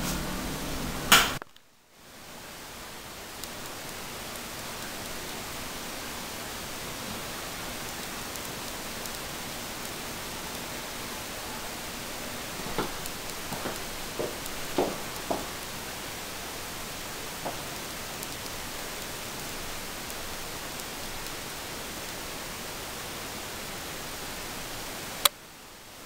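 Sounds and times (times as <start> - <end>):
steady hiss: 0.0 - 26.0
sharp click: 1.1 - 1.6
light knocks: 12.6 - 15.6, 17.4 - 17.8.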